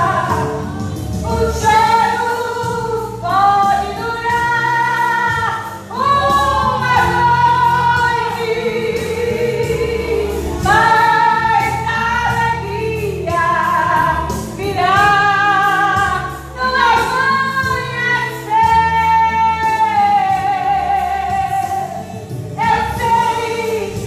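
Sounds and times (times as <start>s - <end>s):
low musical accompaniment: 0.0s - 24.0s
woman singing gospel: 0.0s - 24.0s.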